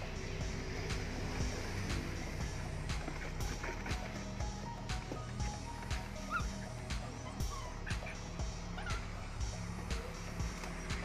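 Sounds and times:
background music with steady beat: 0.0 - 11.0
puppies whimpering: 2.9 - 11.0.

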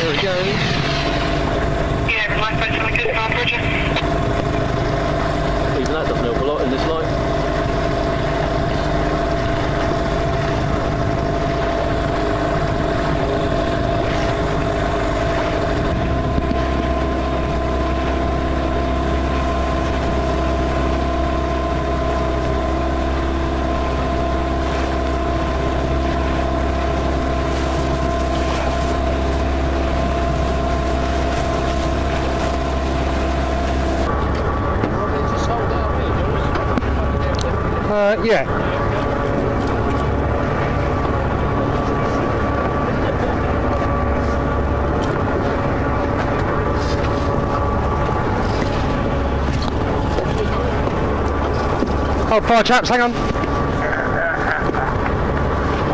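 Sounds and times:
deep low rumble: 0.0 - 52.4
outboard engine droning: 0.0 - 55.9.

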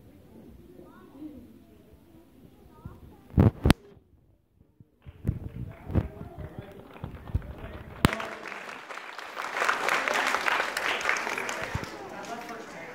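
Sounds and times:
chatter of many voices: 0.0 - 12.9
applause: 5.0 - 12.9.

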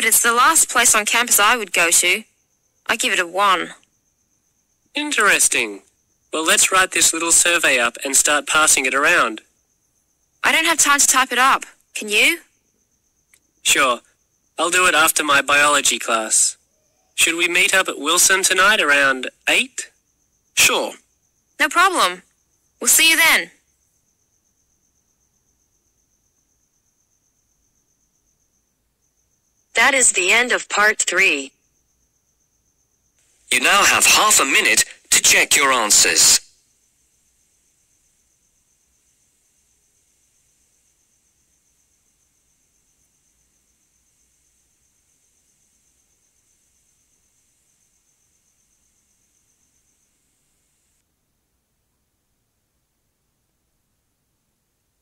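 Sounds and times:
high-pitched hiss: 0.0 - 51.0
faint high-pitched tone: 13.7 - 20.0, 33.5 - 51.0.

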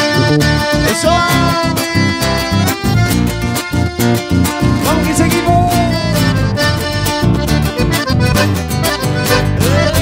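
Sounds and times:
accordion: 0.0 - 10.0
bass-driven dance beat: 0.0 - 10.0
guitar: 0.0 - 10.0.

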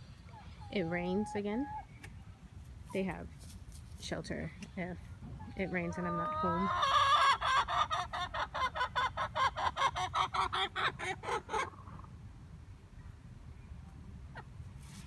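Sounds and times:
hen clucking rapidly: 5.4 - 12.1.

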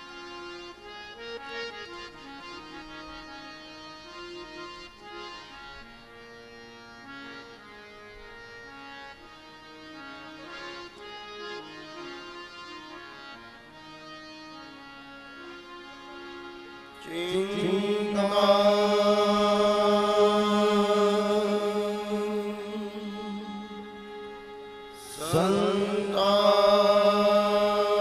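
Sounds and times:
harmonium slow melody: 0.0 - 28.0
man chanting long held note: 25.0 - 28.0.

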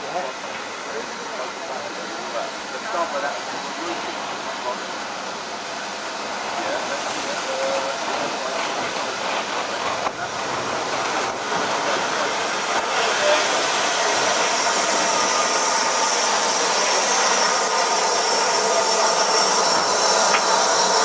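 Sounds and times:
steam locomotive hissing: 0.0 - 21.0.

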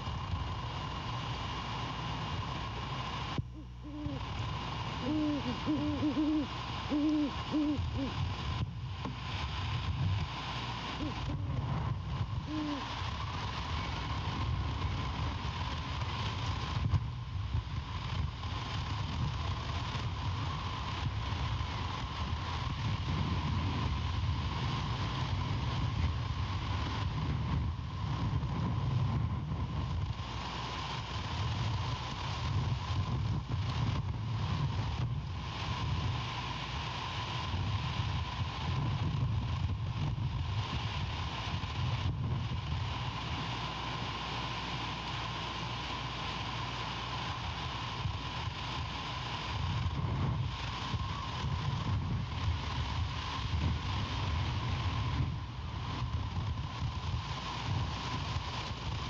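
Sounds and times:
steady low rumble: 0.0 - 59.0
owl hooting: 3.5 - 8.3, 11.0 - 11.7, 12.3 - 13.0.

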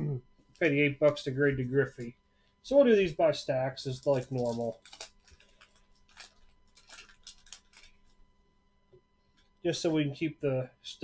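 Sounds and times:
wax paper wrapper crinkling: 3.8 - 8.4.

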